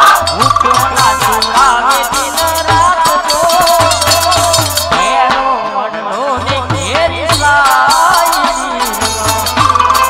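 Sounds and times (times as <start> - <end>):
metallic percussion clinking: 0.0 - 5.1, 6.9 - 10.0
hand drum beats: 0.0 - 5.6, 6.4 - 10.0.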